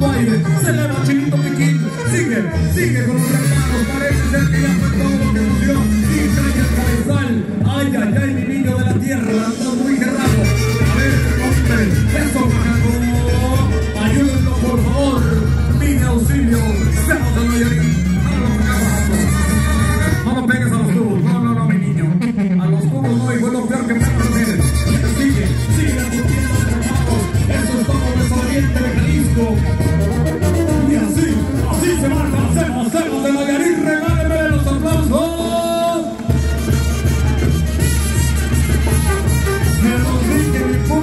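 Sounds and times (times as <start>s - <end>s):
brass band playing: 0.0s - 8.2s, 8.8s - 41.0s
tuba bass line: 0.0s - 41.0s.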